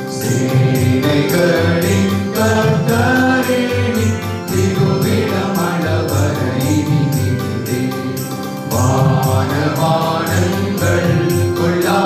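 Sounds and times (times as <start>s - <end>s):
accompaniment with steady beat: 0.0s - 12.0s
men singing devotional song: 0.0s - 12.0s.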